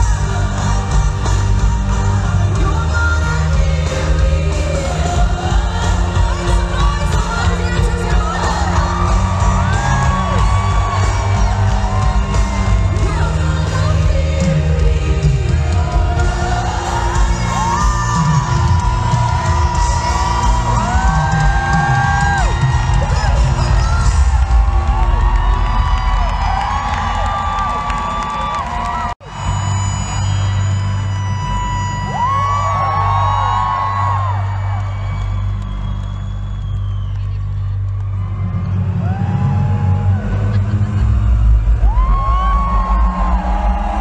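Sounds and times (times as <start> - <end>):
fans screaming and whooping: 0.0 - 44.0
loud live pop music: 0.0 - 44.0.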